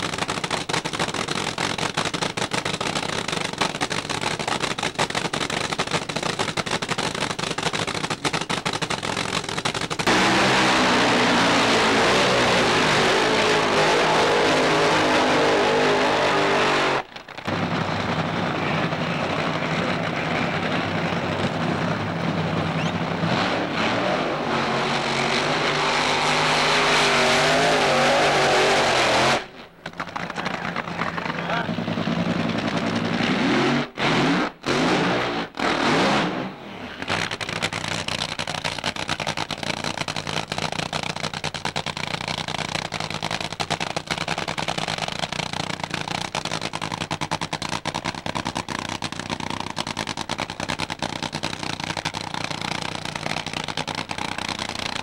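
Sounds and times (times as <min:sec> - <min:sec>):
engines running: 0:00.0 - 0:55.0
tyres spinning in burnout: 0:09.3 - 0:41.3
race car engine revving: 0:10.0 - 0:29.5, 0:30.1 - 0:40.6
engine rising in pitch: 0:10.1 - 0:17.0.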